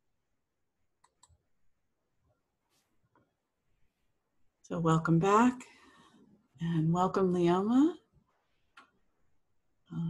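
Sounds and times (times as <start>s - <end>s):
computer mouse clicks: 1.0s - 1.4s.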